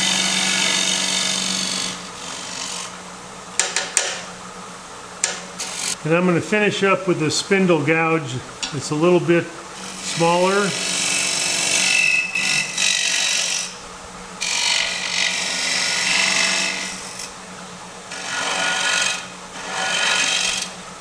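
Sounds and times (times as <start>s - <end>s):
gouge scraping spinning wood: 0.0s - 2.9s, 18.1s - 20.7s
lathe humming: 0.0s - 3.2s, 5.2s - 13.8s, 14.4s - 17.3s, 18.1s - 20.7s.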